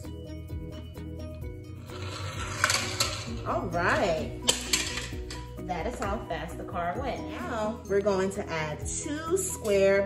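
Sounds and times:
background music: 0.0 - 10.0
toy car rolling down wooden ramp: 1.8 - 3.5.

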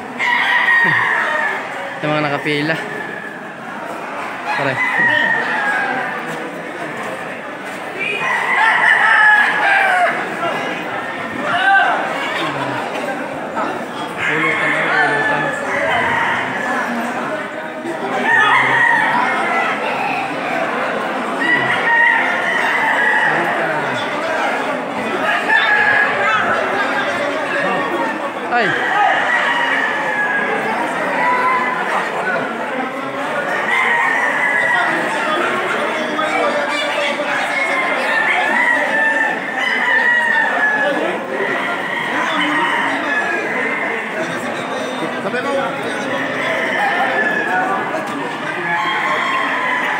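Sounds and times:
crowd of men talking: 0.0 - 49.9
roosters crowing: 0.0 - 49.9.

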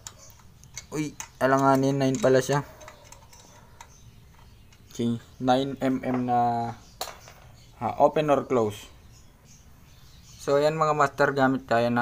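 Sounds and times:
metallic wrench ticks: 0.0 - 4.0.

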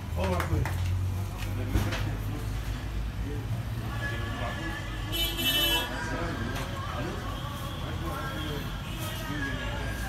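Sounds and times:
faint background voices: 0.2 - 10.0.

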